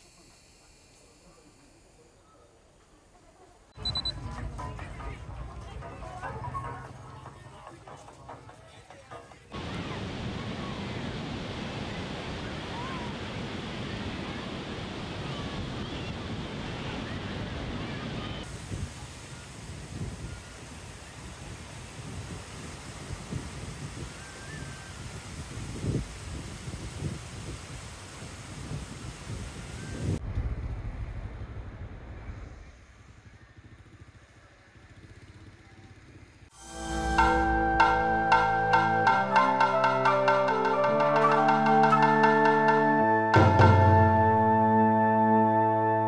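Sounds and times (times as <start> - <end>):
faint voices of people: 0.0 - 21.4
surf breaking on beach: 9.5 - 30.2
wind buffeting microphone: 9.6 - 30.6.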